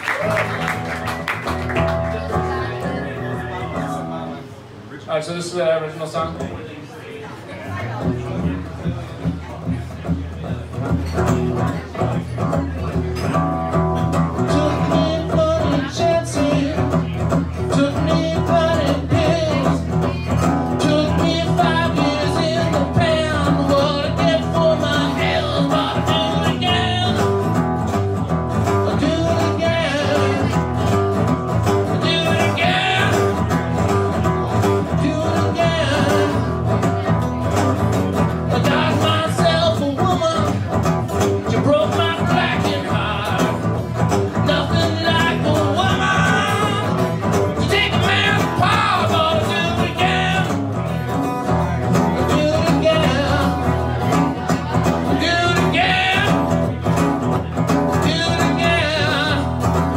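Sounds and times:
strummed acoustic guitar: 0.3 - 4.5, 7.6 - 59.9
man singing: 14.1 - 27.6, 28.6 - 36.8, 38.4 - 59.9.

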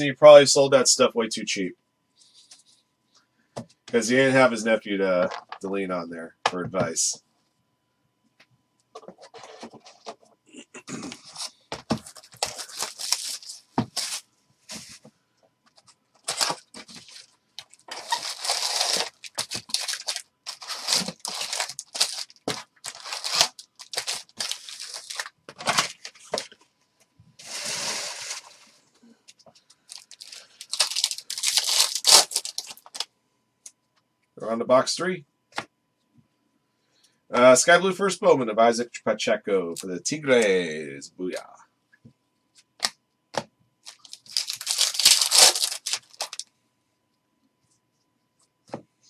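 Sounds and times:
foil packs tearing and crinkling: 11.2 - 14.2, 16.2 - 26.5, 27.4 - 28.6, 29.9 - 33.0, 43.9 - 46.4.

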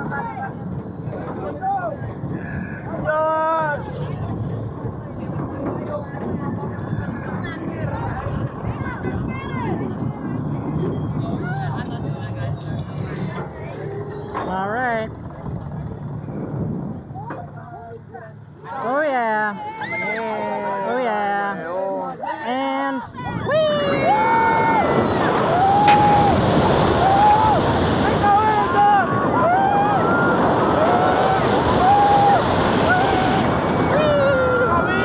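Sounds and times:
wind on microphone: 0.0 - 17.6, 23.1 - 35.0
roller coaster lift mechanical noise: 0.0 - 21.5, 22.5 - 35.0.

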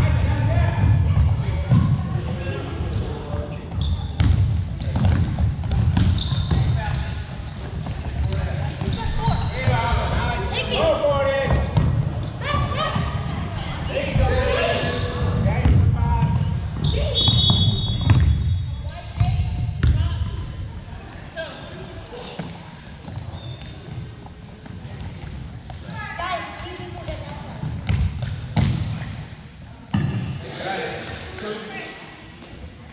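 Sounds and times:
shouts and chatter of people: 8.5 - 18.1.

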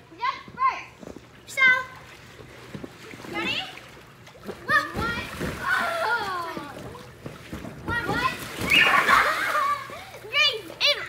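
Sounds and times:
water splashing: 1.5 - 11.0
girls shouting and squealing: 8.3 - 11.0.

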